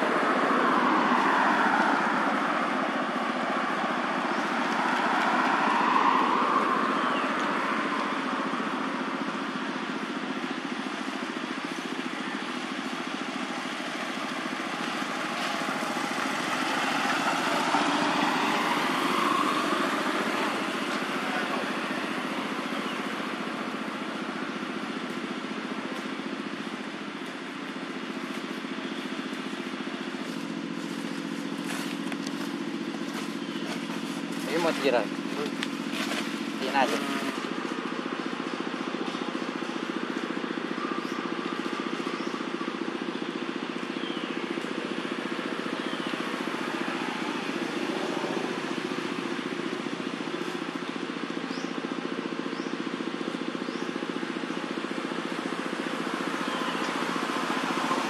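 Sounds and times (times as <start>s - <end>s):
motorbike engine hum: 0.0s - 58.0s
vehicle passing by: 0.0s - 58.0s.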